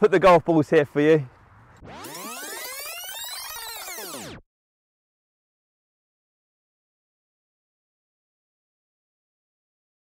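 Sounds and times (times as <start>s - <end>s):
pitch-shifted audio sliding down: 1.8s - 4.4s.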